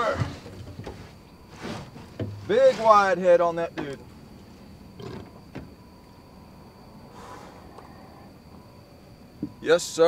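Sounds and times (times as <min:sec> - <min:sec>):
soft knocks on boat deck: 0:09.4 - 0:09.6.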